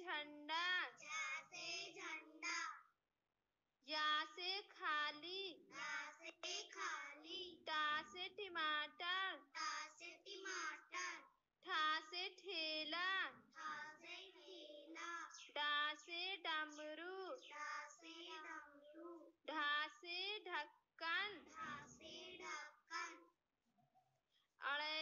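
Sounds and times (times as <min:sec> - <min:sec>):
children chanting: 0:01.0 - 0:02.8, 0:05.6 - 0:07.6, 0:09.6 - 0:11.2, 0:13.6 - 0:15.5, 0:16.6 - 0:19.0, 0:21.4 - 0:23.2.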